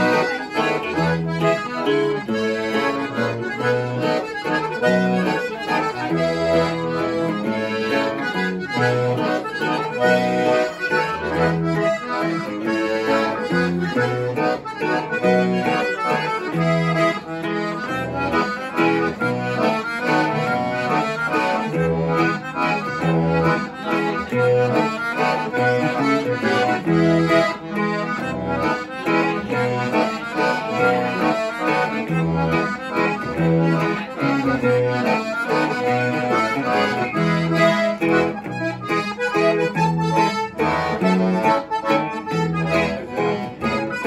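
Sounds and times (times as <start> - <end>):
button accordion melody: 0.0 - 44.0
guitar strumming bass notes and chords: 0.0 - 44.0.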